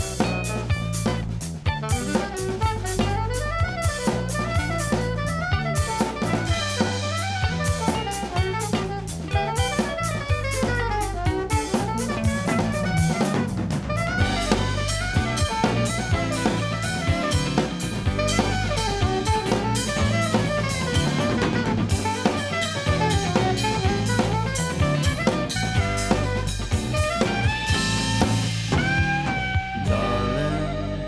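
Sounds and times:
drum kit beat: 0.0s - 31.0s
electric bass: 0.0s - 31.0s
saxophone solo: 0.0s - 31.0s.

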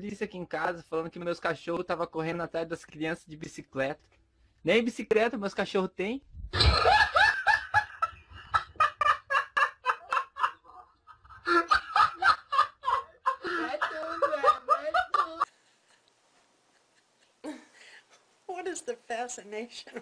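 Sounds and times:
person laughing hard: 6.6s - 15.5s.

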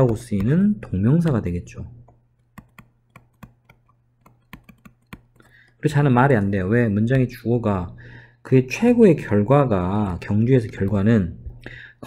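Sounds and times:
stylus tapping on tablet screen: 0.0s - 6.5s, 9.9s - 11.2s.

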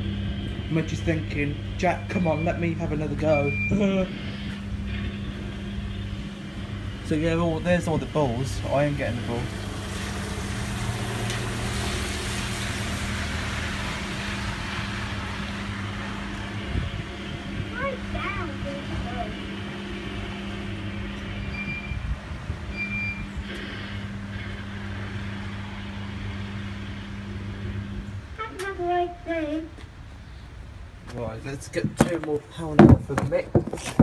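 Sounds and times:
low electrical hum: 0.0s - 34.0s
noisy shop background: 0.0s - 34.0s
short high beeps: 21.5s - 22.0s.

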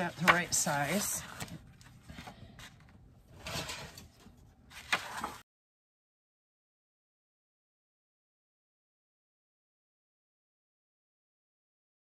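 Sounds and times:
paper rustling on cutting mat: 0.0s - 5.4s.

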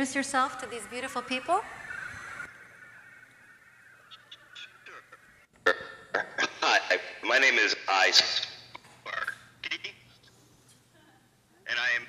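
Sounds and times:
voice: 0.0s - 1.7s, 4.1s - 10.0s.

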